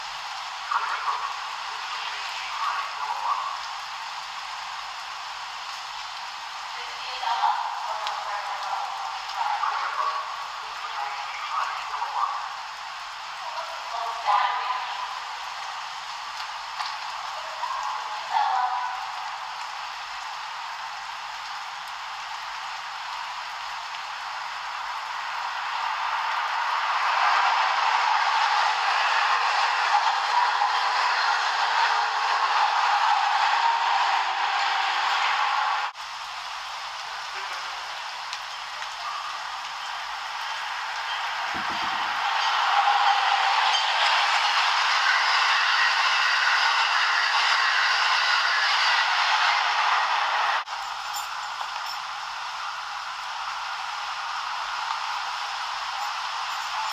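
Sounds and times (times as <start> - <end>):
train rushing: 23.4 - 56.9.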